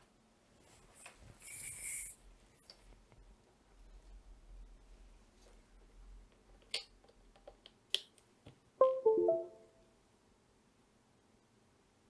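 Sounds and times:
computer chime of falling notes: 8.8s - 9.8s.

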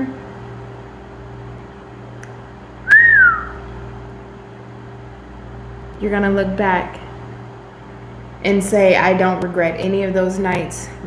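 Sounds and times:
steady low hum: 0.0s - 11.0s
whistle-like tone gliding down: 2.9s - 3.6s.

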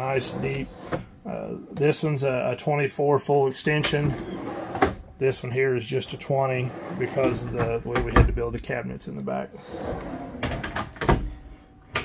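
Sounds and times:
drawer sliding rumble: 6.6s - 8.3s, 9.6s - 11.3s.

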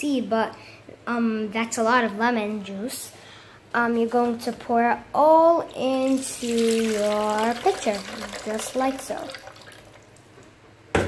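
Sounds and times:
juice trickling into plastic pitcher: 6.0s - 10.4s.

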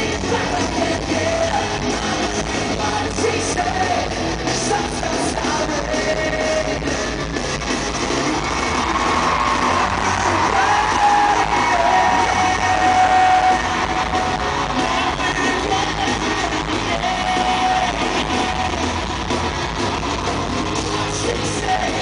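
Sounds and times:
live pop-rock band: 0.0s - 22.0s.

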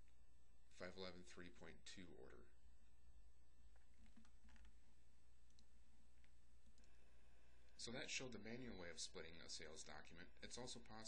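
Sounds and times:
low steady hum: 0.0s - 11.0s
computer mouse clicks: 4.0s - 4.7s.

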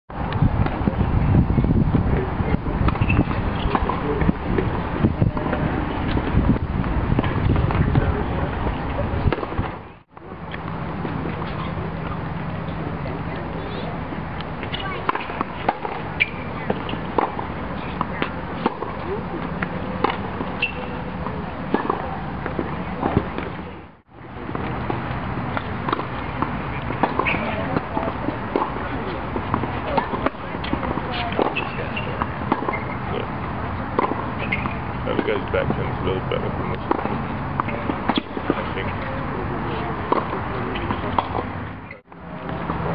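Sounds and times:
tennis balls struck and bouncing: 2.2s - 23.6s, 24.5s - 42.9s.

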